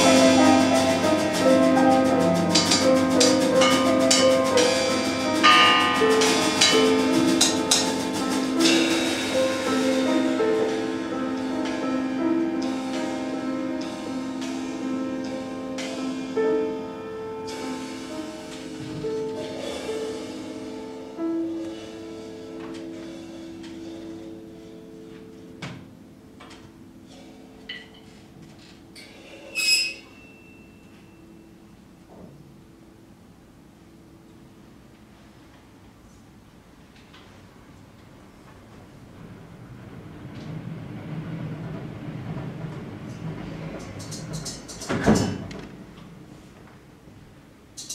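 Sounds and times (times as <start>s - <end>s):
scattered drum kit strikes: 0.0s - 16.7s, 17.4s - 24.8s, 41.7s - 46.0s
held piano notes: 0.0s - 34.6s
metal cymbal scraped squealing: 29.0s - 31.4s
bell-like ringing strike: 30.0s - 31.5s.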